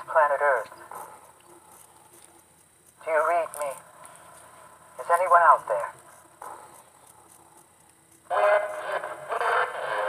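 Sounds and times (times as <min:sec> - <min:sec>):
buzzing radio static: 0:00.0 - 0:10.0.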